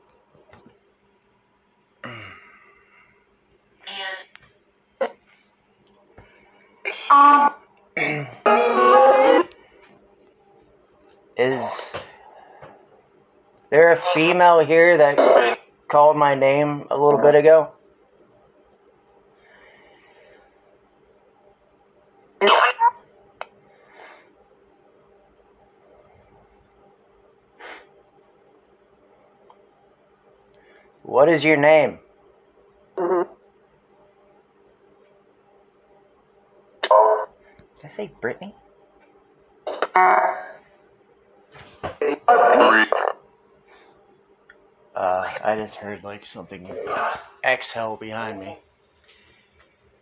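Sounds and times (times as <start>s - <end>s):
faint electronic hum: 0.0s - 50.0s
garbled voice-like fragments: 42.0s - 43.2s, 46.6s - 47.6s.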